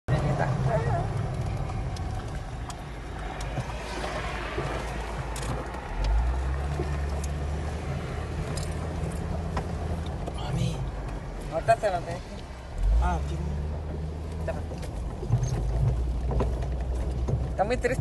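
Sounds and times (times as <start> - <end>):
engine and road rumble: 0.0 - 18.0.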